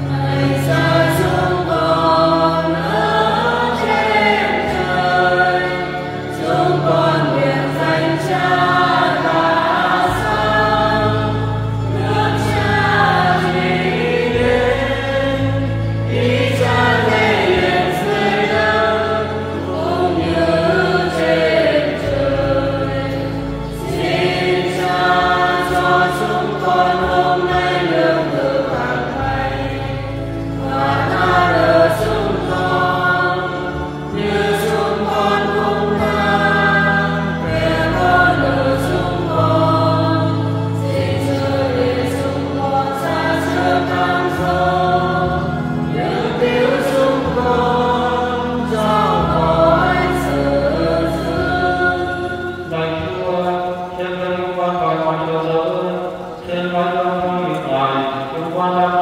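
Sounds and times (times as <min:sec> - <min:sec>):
choir singing a hymn: 0:00.0 - 0:59.0
low accompanying chords: 0:00.0 - 0:59.0.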